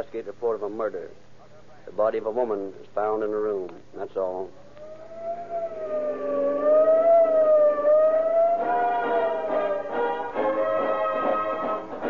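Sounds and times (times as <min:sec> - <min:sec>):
police siren wailing: 0:04.5 - 0:11.8.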